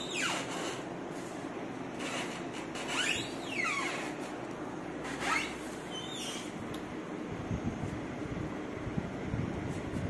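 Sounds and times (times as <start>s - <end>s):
refrigerator door squeaking open: 0.0s - 0.9s, 1.9s - 4.3s, 5.0s - 6.6s
steady low hum: 0.0s - 10.0s.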